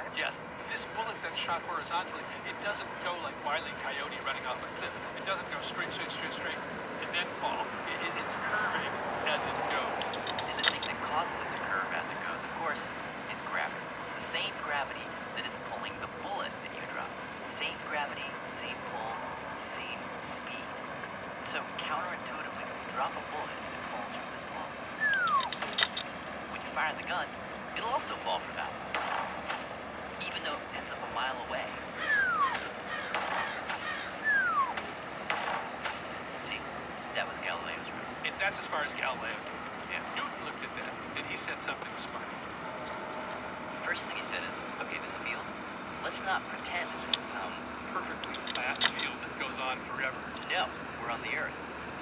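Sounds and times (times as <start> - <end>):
indistinct voices: 0.0 - 20.8, 21.4 - 51.7
person speaking: 0.0 - 20.8, 21.4 - 29.5, 43.7 - 51.6
outdoor background noise: 0.0 - 52.0
short clicks: 25.1 - 26.1.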